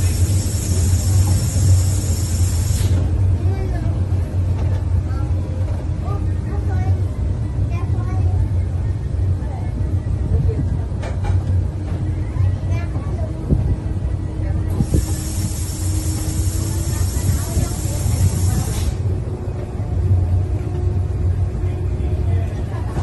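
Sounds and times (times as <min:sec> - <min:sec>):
passengers murmuring: 0:00.0 - 0:23.0
railcar drone: 0:00.0 - 0:23.0
high hiss: 0:14.8 - 0:19.0.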